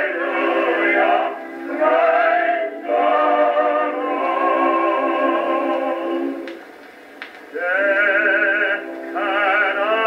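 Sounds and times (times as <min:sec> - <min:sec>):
vocal quartet singing a hymn: 0:00.0 - 0:06.5, 0:07.5 - 0:10.0.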